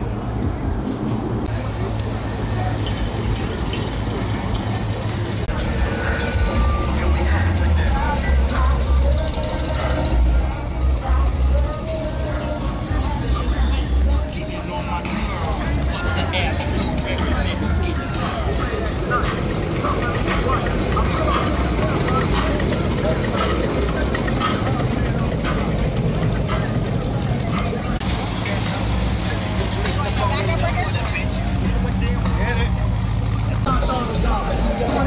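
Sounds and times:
cars rolling past: 0.0s - 35.0s
people's voices: 0.0s - 35.0s
music: 5.5s - 35.0s.

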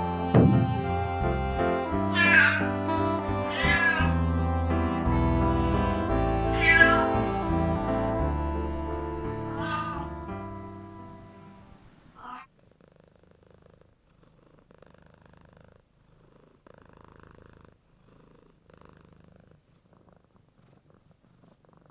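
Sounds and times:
cat purring: 12.2s - 21.9s.

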